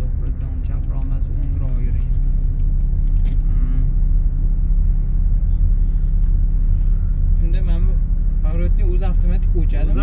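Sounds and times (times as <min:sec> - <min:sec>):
car engine drone: 0:00.0 - 0:10.0
road noise: 0:00.0 - 0:10.0.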